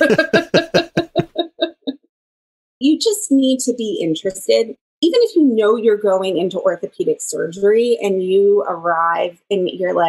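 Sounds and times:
person laughing: 0.0s - 1.9s.

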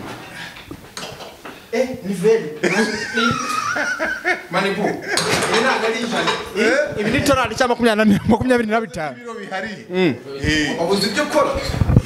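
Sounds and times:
voices talking and laughing: 2.3s - 11.8s.

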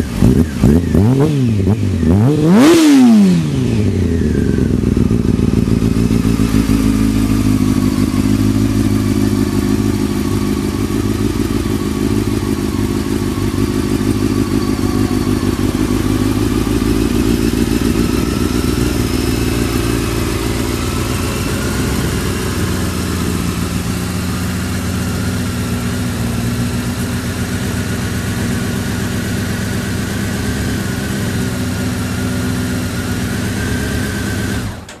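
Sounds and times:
motorcycle engine idling: 0.0s - 35.0s.

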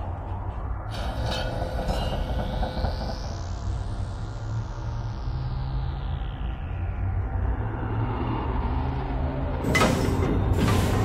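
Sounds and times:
rising whine: 0.0s - 11.0s
sharp metallic clanks: 0.9s - 3.1s
mechanical gate grinding clatter: 0.9s - 3.4s.

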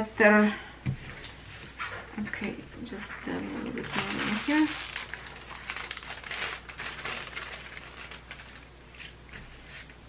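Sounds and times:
plastic film crinkling: 3.3s - 9.2s.

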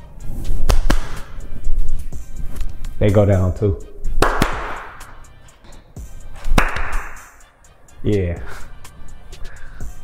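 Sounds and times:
hand claps echoing in room: 0.6s - 1.4s, 4.1s - 7.4s.

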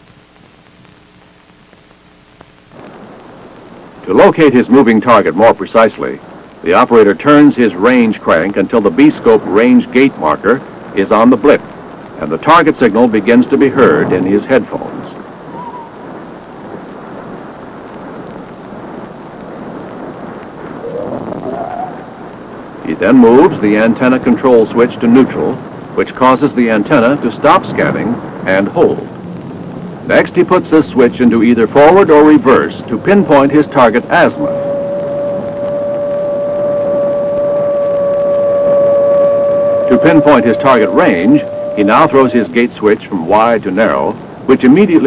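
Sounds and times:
faint tone rising in pitch: 15.5s - 16.0s, 20.8s - 22.2s, 30.0s - 43.0s
radar doppler rushing noise: 20.7s - 22.5s.

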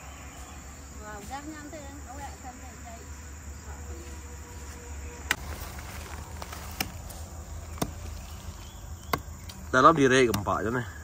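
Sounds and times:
crickets droning: 0.0s - 11.0s.

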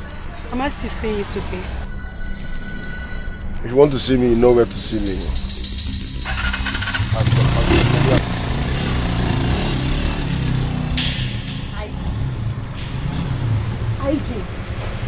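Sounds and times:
background music: 0.0s - 15.0s
motorcycle engine passing: 5.1s - 15.0s.

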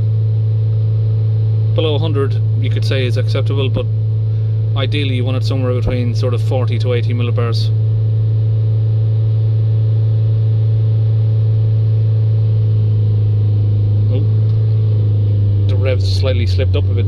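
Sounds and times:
diesel engine droning: 0.0s - 17.0s.

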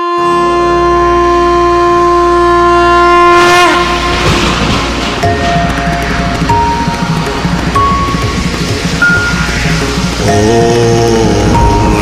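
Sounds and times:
wind instrument long note: 0.0s - 5.1s
low drone: 0.0s - 12.0s
musical accompaniment: 0.0s - 12.0s.

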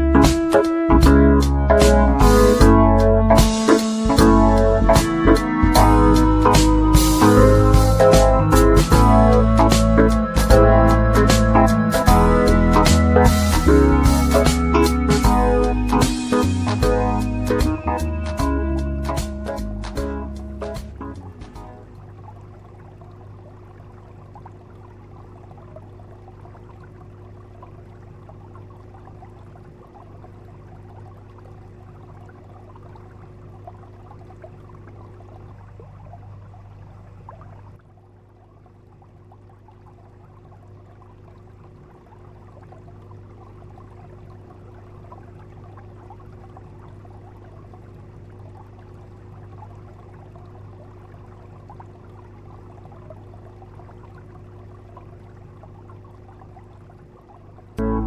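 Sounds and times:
low steady hum: 0.0s - 58.0s
crackling fizzing underwater noise: 20.7s - 57.8s.

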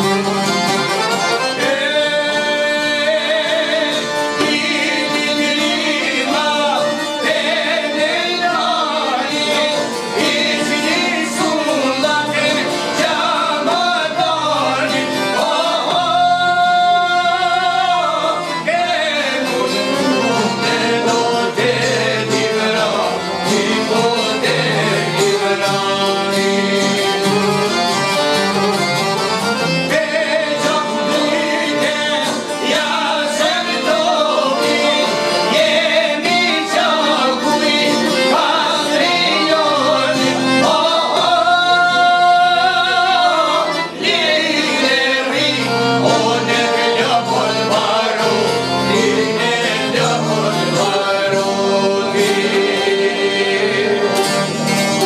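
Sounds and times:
accordion: 0.0s - 55.0s
guitar: 0.0s - 55.0s
plucked lutes: 0.0s - 55.0s
men singing: 1.2s - 28.2s, 29.6s - 55.0s.

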